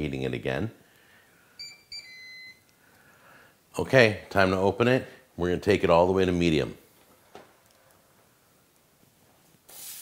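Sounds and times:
electronic beeps: 1.6 - 2.6.

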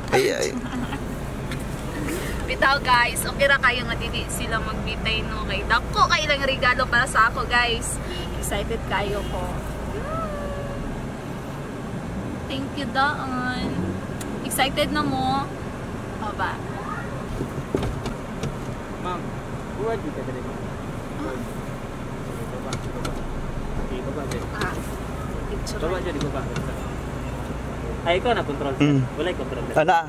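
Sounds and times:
car cabin hum: 0.0 - 27.9.

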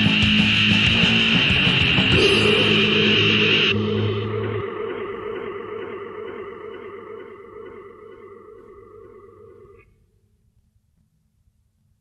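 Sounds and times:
heavy metal chord ringing out: 2.1 - 4.9.

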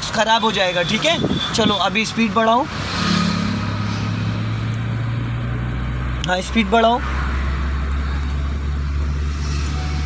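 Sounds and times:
road noise: 0.0 - 10.0
car engine accelerating: 2.7 - 10.0.

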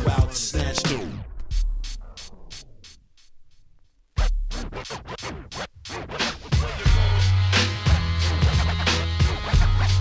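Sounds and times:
hip-hop music: 0.0 - 3.3, 4.1 - 10.0
record scratching: 0.0 - 10.0
heavy bass line: 6.5 - 10.0.

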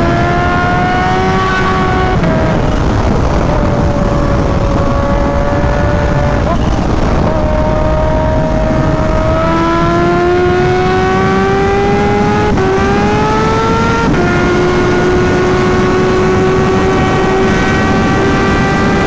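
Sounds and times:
motorcycle engine accelerating: 0.0 - 19.0
wind on microphone: 0.0 - 19.0.

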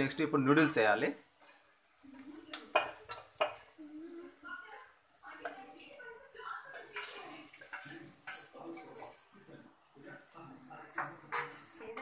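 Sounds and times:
metal spoon scraping steel cookware: 6.7 - 9.5, 11.0 - 12.0.

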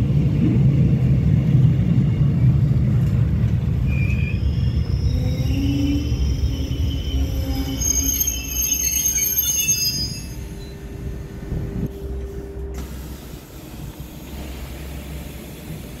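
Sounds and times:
train rumbling: 0.0 - 16.0
train wheels squealing: 3.7 - 11.1.

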